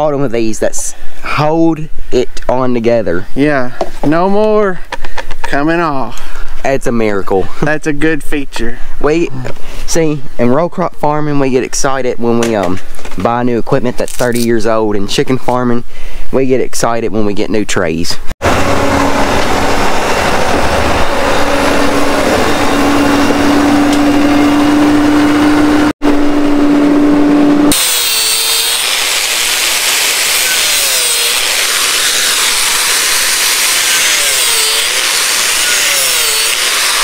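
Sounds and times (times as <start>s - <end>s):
angle grinder cutting metal: 18.4s - 25.9s, 26.8s - 37.0s
diesel tractor engine running: 18.4s - 27.7s.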